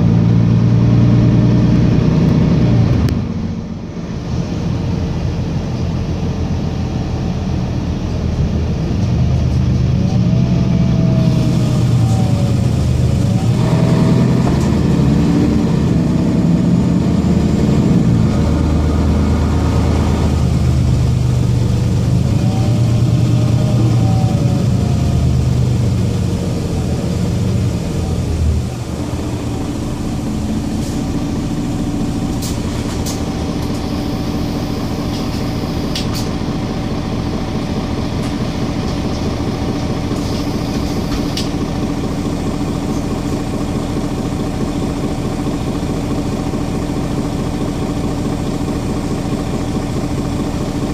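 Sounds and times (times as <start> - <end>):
bus diesel engine: 0.0 - 50.9.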